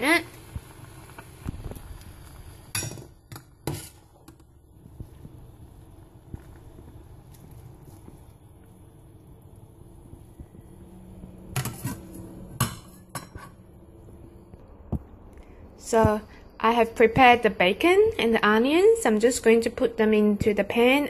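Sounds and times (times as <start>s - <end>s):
water boiling: 0.0s - 14.7s.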